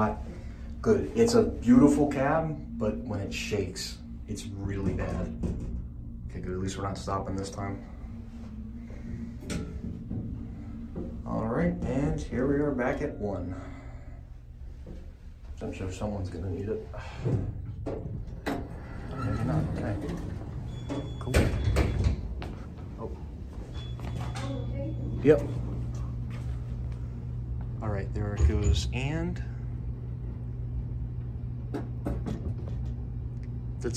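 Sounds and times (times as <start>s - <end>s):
elevator humming in travel: 0.0s - 33.9s
elevator doors sliding: 17.1s - 26.2s.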